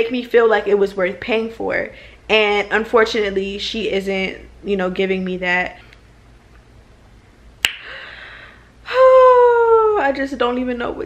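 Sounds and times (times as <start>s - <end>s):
woman's mouth click: 7.6s - 8.0s
woman sighing: 7.8s - 9.4s.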